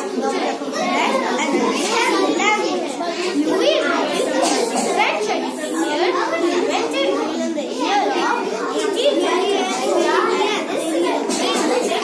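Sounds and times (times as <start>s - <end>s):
child speaking: 0.0s - 12.0s
children chattering: 0.0s - 12.0s.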